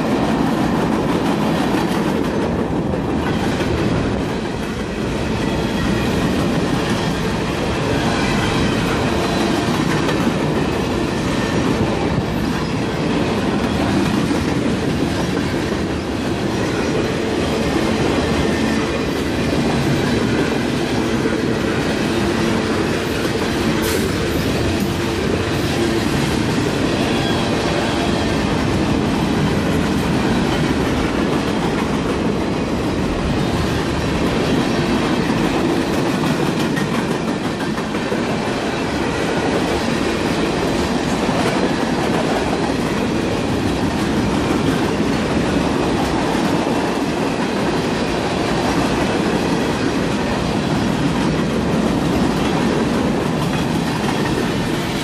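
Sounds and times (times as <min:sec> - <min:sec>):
train wheels rumbling on rails: 0:00.0 - 0:55.0
rhythmic clickety-clack: 0:28.4 - 0:55.0.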